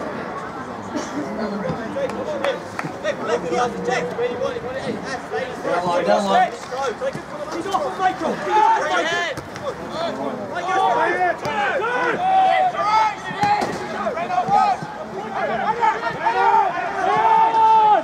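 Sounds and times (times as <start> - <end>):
men shouting and calling out: 1.2 - 18.0.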